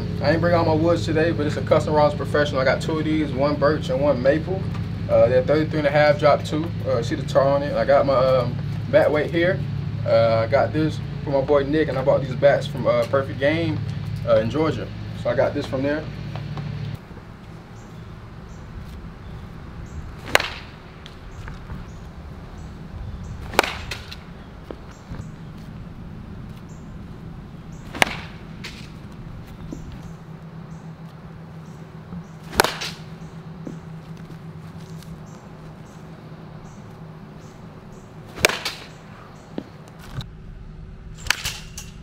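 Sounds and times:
low hum: 0:00.0 - 0:42.0
wooden bat hitting baseball: 0:20.2 - 0:21.9, 0:23.4 - 0:25.8, 0:27.8 - 0:30.2, 0:32.1 - 0:35.3, 0:38.3 - 0:39.7, 0:41.2 - 0:42.0.

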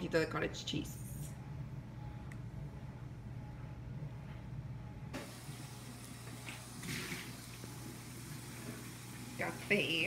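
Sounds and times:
low hum: 0:00.0 - 0:06.5.

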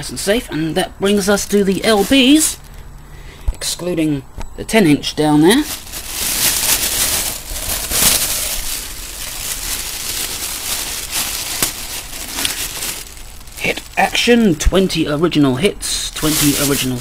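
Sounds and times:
record sleeves rustling: 0:01.1 - 0:02.8, 0:05.5 - 0:14.6, 0:16.2 - 0:17.0.

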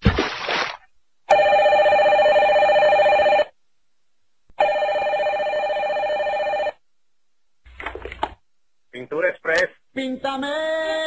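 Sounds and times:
desk telephone ringing: 0:01.3 - 0:03.5, 0:04.6 - 0:06.8.

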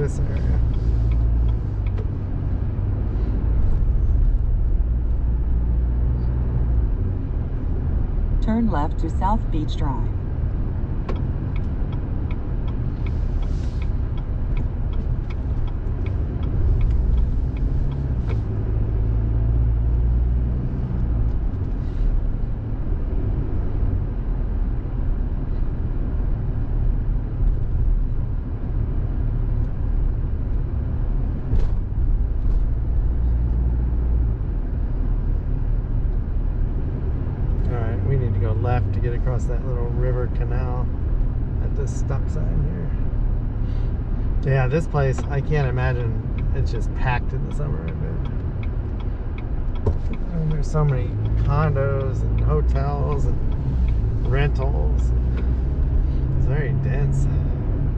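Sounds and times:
car engine and tyres rumbling: 0:00.0 - 0:57.9
faint regular ticking: 0:00.1 - 0:02.0, 0:44.4 - 0:56.5.

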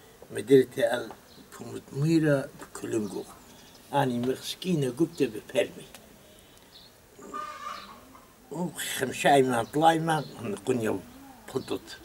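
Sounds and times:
fowl calling faintly: 0:07.2 - 0:08.6.

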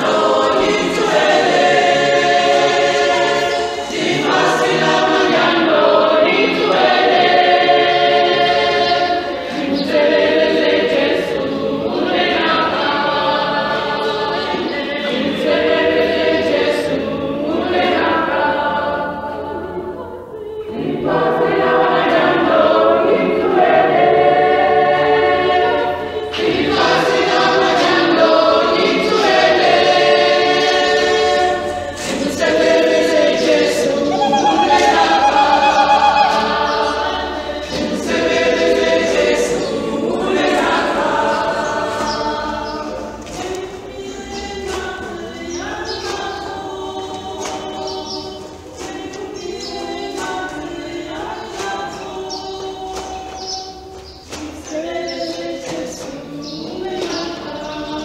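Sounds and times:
choir singing a hymn: 0:00.0 - 0:58.0.

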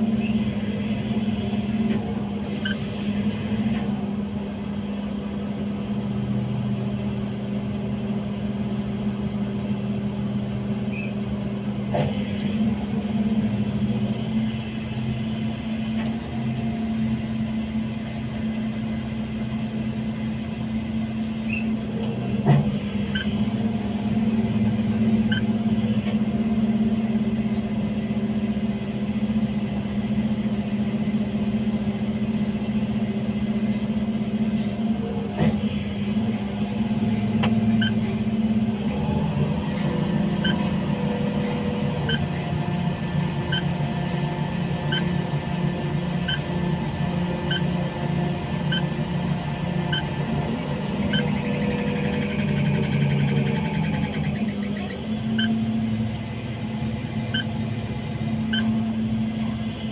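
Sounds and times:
diesel engine running: 0:00.0 - 0:59.9
high warning beep: 0:25.3 - 0:25.6, 0:57.3 - 0:57.6.

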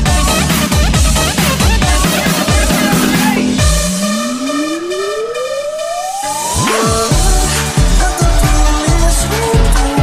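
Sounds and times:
deep bass sweep: 0:00.9 - 0:08.8
held synth chords: 0:01.7 - 0:08.4
rising siren-like synth tone: 0:02.4 - 0:07.9.

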